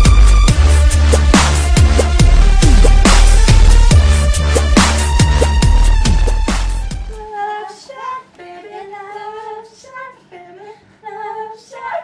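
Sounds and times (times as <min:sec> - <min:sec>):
loud dance track: 0:00.0 - 0:07.2
young women singing unaccompanied: 0:07.2 - 0:12.0.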